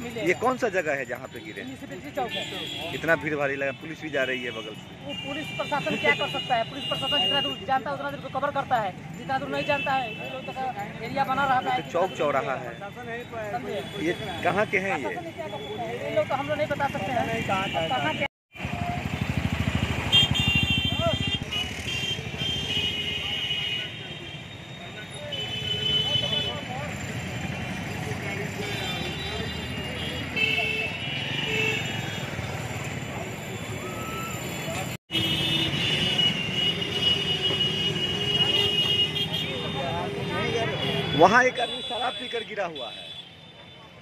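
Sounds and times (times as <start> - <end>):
busy street traffic: 0.0 - 44.0
small motorcycle engine running: 18.6 - 21.7.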